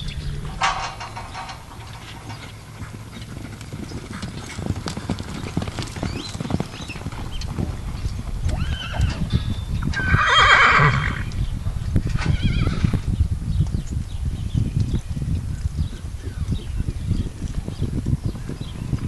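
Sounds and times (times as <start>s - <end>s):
horses' hoofbeats on dirt: 0.0s - 19.0s
horse whinnying: 8.5s - 9.3s, 9.9s - 11.3s, 12.2s - 13.0s.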